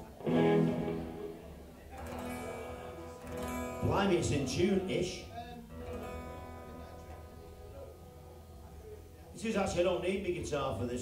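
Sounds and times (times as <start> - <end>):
acoustic guitar strummed: 0.0 - 9.2.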